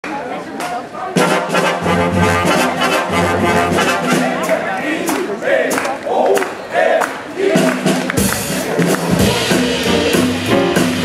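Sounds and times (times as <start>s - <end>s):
swing big band playing: 1.1s - 5.9s, 7.4s - 11.0s
trumpets and trombones: 1.2s - 5.1s.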